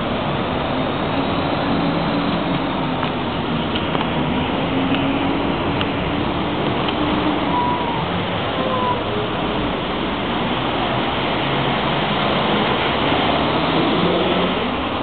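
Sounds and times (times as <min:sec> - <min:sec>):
street bustle: 0:00.0 - 0:15.0
traffic hiss: 0:00.0 - 0:15.0.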